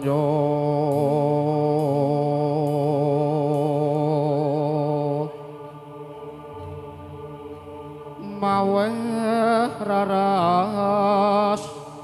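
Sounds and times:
chant-like singing: 0:00.0 - 0:12.0.

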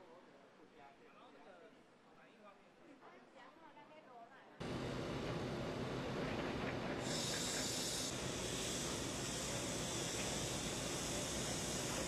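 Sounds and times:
steady machinery hum: 0:04.6 - 0:12.0
broad hiss: 0:07.0 - 0:12.0.

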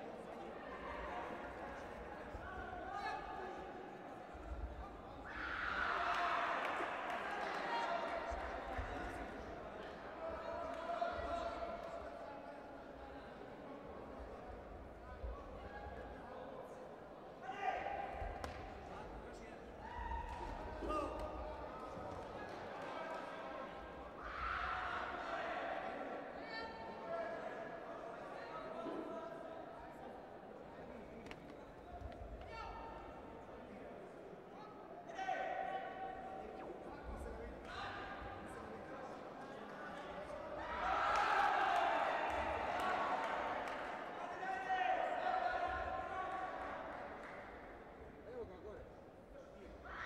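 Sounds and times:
voices echoing in a hall: 0:00.0 - 0:50.0.

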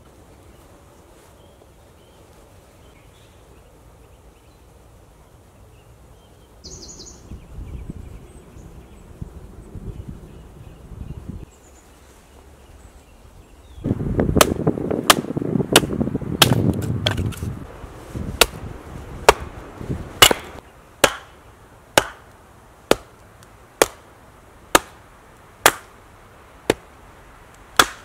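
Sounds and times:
hatchet splitting kindling: 0:20.2 - 0:21.3.

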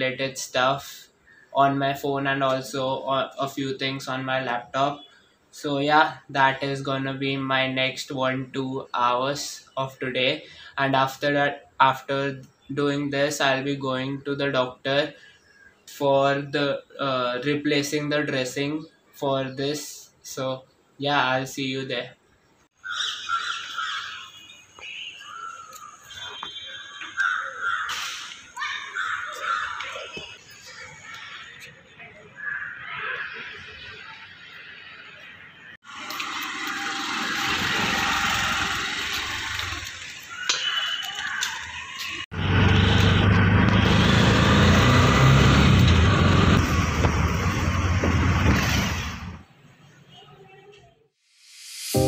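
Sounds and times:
birds calling: 0:22.2 - 0:35.7, 0:36.6 - 0:42.2
road and wind noise: 0:33.8 - 0:40.4, 0:41.3 - 0:50.1.

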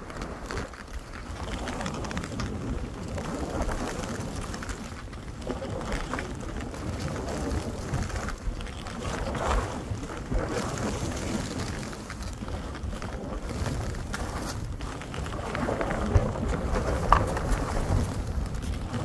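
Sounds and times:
skis scraping through snow: 0:00.0 - 0:19.0
wind rushing over microphone: 0:00.0 - 0:19.0.

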